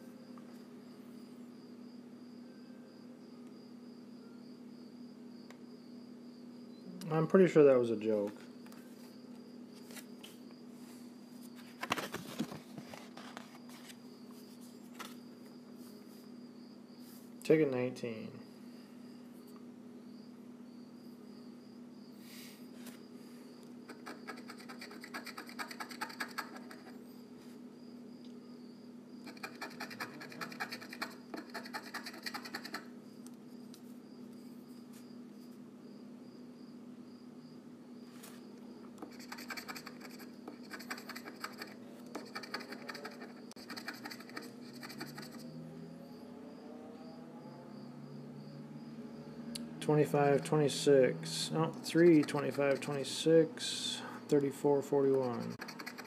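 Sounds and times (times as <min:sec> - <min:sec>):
steady low hum: 0:00.0 - 0:56.0
lottery ticket being scratched: 0:23.9 - 0:27.0, 0:29.3 - 0:32.9, 0:39.0 - 0:45.5, 0:51.9 - 0:53.3, 0:54.8 - 0:56.0.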